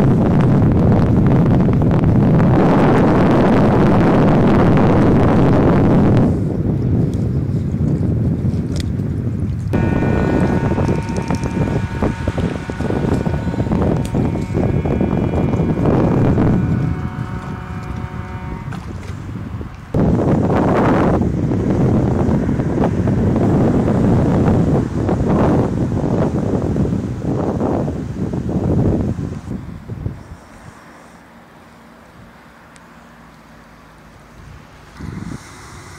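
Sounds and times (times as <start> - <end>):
wind buffeting microphone: 0.0 - 31.0, 34.1 - 35.9
faint barge engine drone: 0.0 - 35.9.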